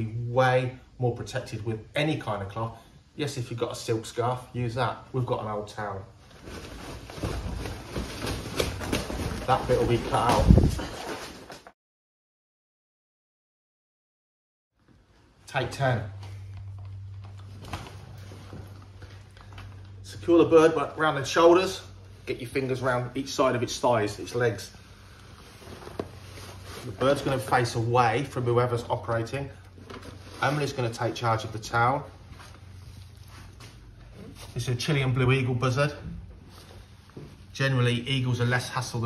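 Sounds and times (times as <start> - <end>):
towel and bubble wrap rustling: 5.2 - 11.8, 22.3 - 35.8.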